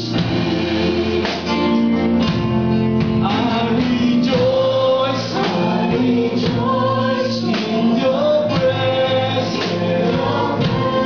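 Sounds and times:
drums: 0:00.0 - 0:11.0
electric guitars: 0:00.0 - 0:11.0
keyboard: 0:00.0 - 0:11.0
man singing lead: 0:03.0 - 0:11.0
voices singing along: 0:03.1 - 0:11.0.

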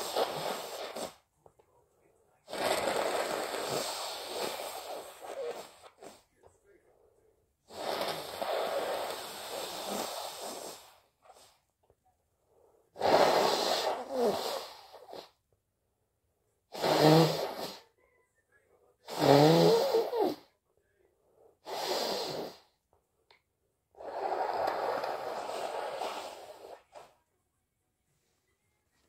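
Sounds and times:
person blowing nose: 0:00.0 - 0:01.3, 0:02.5 - 0:06.3, 0:07.7 - 0:11.6, 0:13.0 - 0:15.4, 0:16.7 - 0:17.9, 0:19.0 - 0:20.5, 0:21.6 - 0:22.8, 0:24.0 - 0:27.1.

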